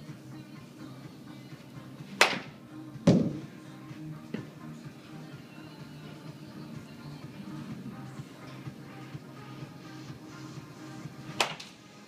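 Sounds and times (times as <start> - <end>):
background music: 0.0 - 12.0
bat cracking against ball: 2.2 - 2.5, 11.4 - 11.8
heavy thump: 3.0 - 3.5.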